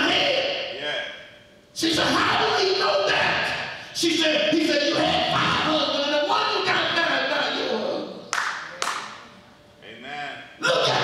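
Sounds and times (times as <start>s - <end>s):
hand claps in a hall: 8.3s - 9.3s.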